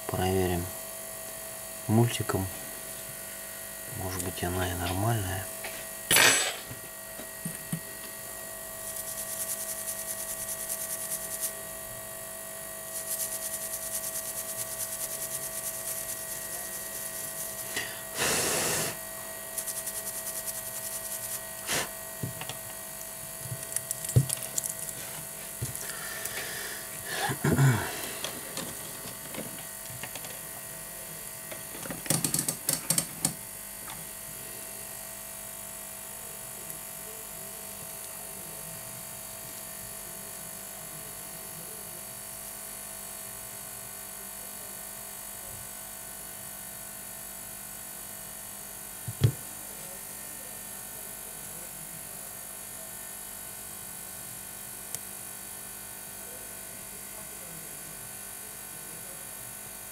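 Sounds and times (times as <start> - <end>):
steady electrical hum: 0.0 - 44.3
light rapid scratching: 8.8 - 11.6, 12.8 - 17.8, 19.5 - 21.6.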